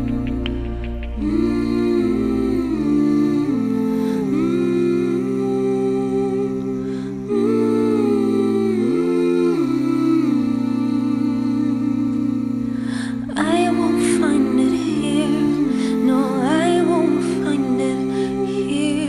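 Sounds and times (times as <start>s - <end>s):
wordless vocal harmonies: 0.0s - 19.0s.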